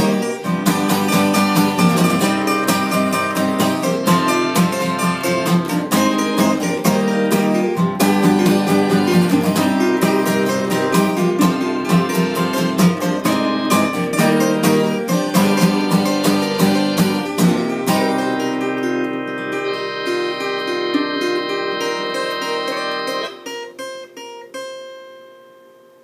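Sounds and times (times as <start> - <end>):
acoustic guitar strumming: 0.0 - 25.8.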